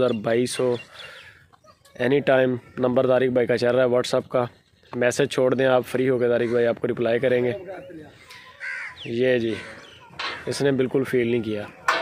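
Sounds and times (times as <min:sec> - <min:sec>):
man speaking: 0:02.0 - 0:08.3, 0:10.4 - 0:11.8.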